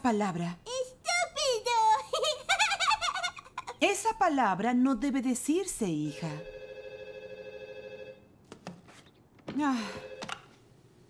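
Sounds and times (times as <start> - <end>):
telephone ringing: 6.0 - 8.4, 9.7 - 10.6.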